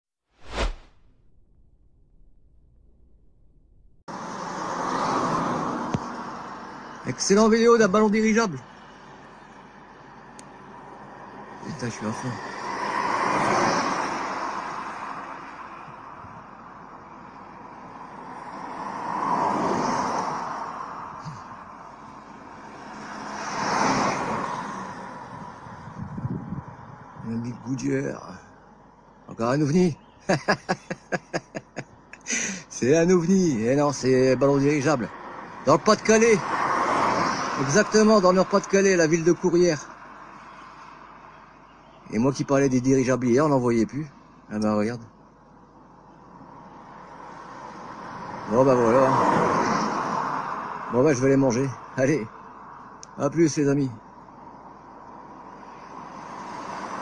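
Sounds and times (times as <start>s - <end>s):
whoosh sound effect: 0.4s - 3.6s
faint low rumble: 0.5s - 4.1s
vehicle passing by: 4.1s - 8.0s, 8.7s - 16.2s, 17.6s - 27.4s, 34.0s - 41.3s, 46.4s - 52.8s, 54.3s - 57.0s.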